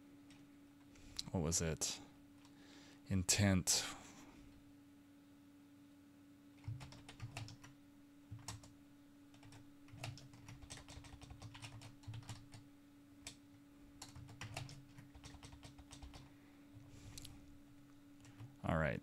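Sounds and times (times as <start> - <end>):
computer keyboard typing: 6.6 - 12.6, 14.0 - 16.3, 18.2 - 18.6.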